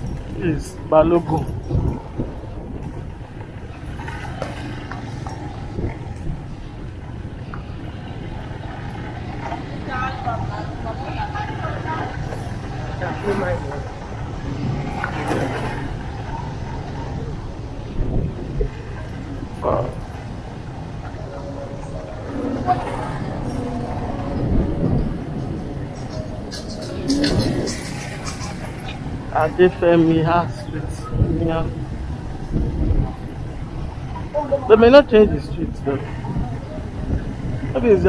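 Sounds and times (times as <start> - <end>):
people talking in street: 0.0 - 38.0.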